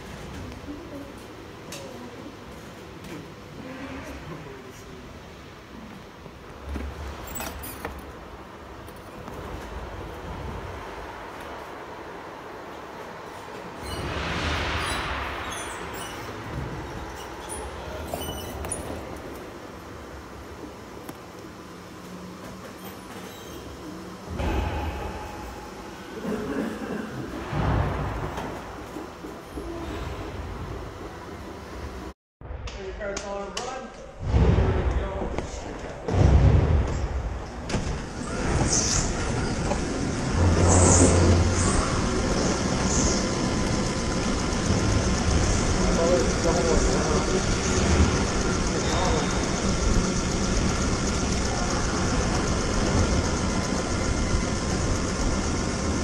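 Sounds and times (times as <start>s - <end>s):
go-kart engine rumbling: 39.4s - 56.0s.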